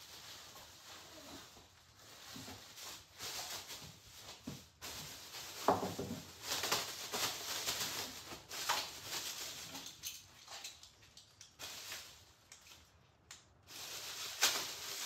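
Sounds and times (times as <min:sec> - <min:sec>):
plastic wrapping crinkling: 0:00.0 - 0:15.0.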